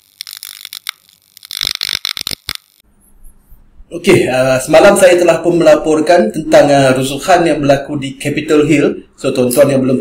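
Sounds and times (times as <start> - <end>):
electrical crackle and buzz: 0.0 - 2.8.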